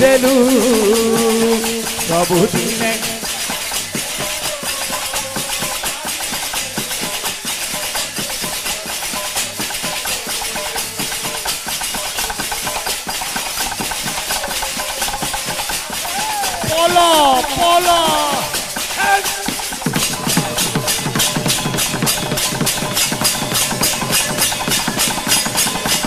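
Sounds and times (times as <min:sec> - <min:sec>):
metal hand cymbals clashing: 0:00.0 - 0:26.0.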